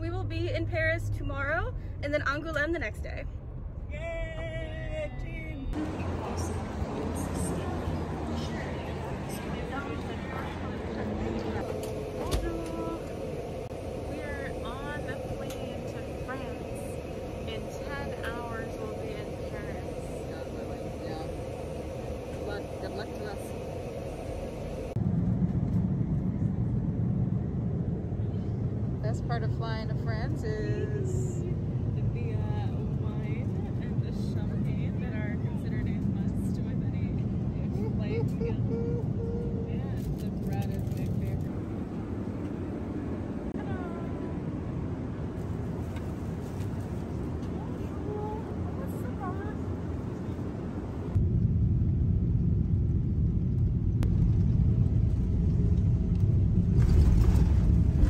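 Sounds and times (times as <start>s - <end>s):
woman speaking: 0.0s - 3.3s, 3.9s - 13.3s, 14.0s - 23.9s, 29.0s - 38.7s, 39.4s - 41.5s, 43.5s - 44.4s, 47.4s - 49.7s
airliner cabin drone: 0.0s - 58.0s
quiet voices talking: 5.7s - 13.4s.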